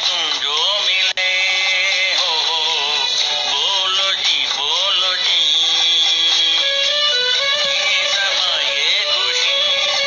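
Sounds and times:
instrumental accompaniment: 1.7s - 10.0s.

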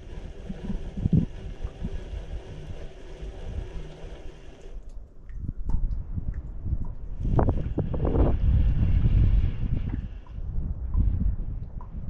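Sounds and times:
fishing reel gear whirring: 0.0s - 4.8s
wind rumbling on microphone: 0.0s - 12.0s.

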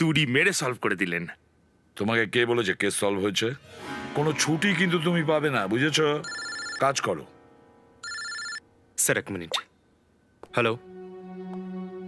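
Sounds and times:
mobile phone ringtone: 6.2s - 7.1s, 8.0s - 8.7s.

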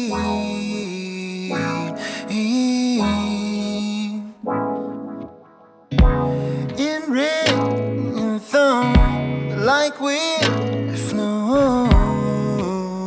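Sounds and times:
electric guitar chords: 0.0s - 13.0s
deep low hits: 6.0s - 6.7s, 11.6s - 12.4s.

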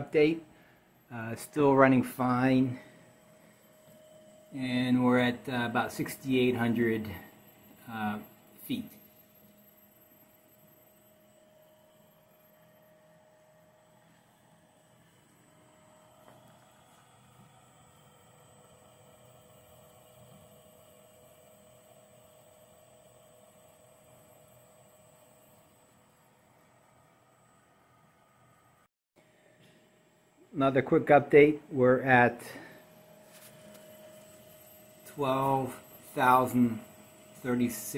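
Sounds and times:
faint steady machine hum: 0.0s - 37.9s.

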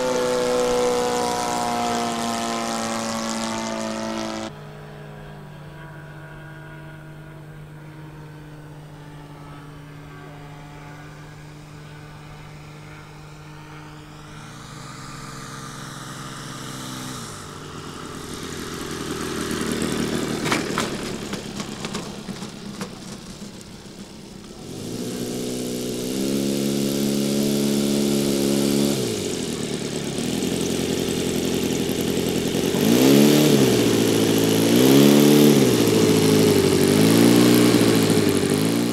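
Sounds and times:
model airplane engine: 0.0s - 38.9s
rushing noise with knocks: 20.3s - 23.8s.

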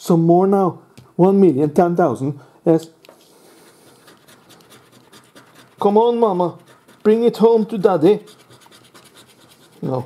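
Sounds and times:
scratch card being scratched: 3.3s - 10.0s.

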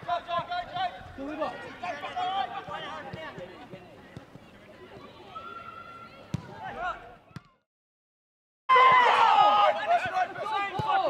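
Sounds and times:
footballers shouting: 0.0s - 3.6s, 8.7s - 11.0s
football being kicked: 6.3s - 6.6s.

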